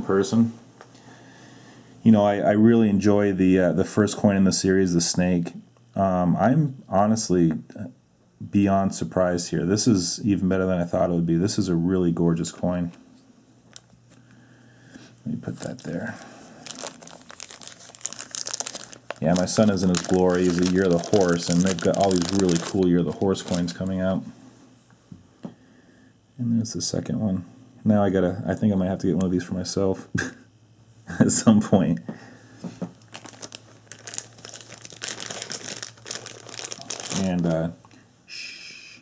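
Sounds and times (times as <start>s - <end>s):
plastic bag crinkling: 15.4s - 24.1s, 33.0s - 37.5s.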